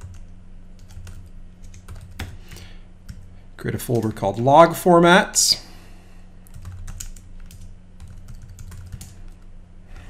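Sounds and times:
computer keyboard typing: 0.0 - 3.3, 6.4 - 9.4
steady low hum: 0.0 - 10.0.

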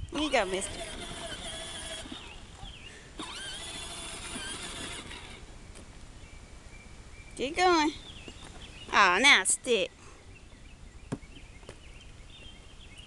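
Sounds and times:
plastic wheels rolling on asphalt: 0.0 - 6.0
toy electric motor whining: 0.1 - 2.6, 3.2 - 5.5.

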